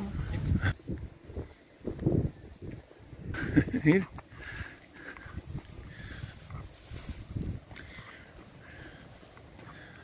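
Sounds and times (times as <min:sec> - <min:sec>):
wind on microphone: 0:00.0 - 0:08.2.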